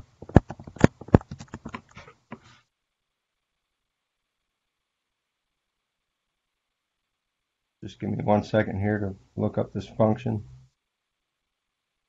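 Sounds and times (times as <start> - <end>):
computer keyboard typing: 0.0 - 2.0.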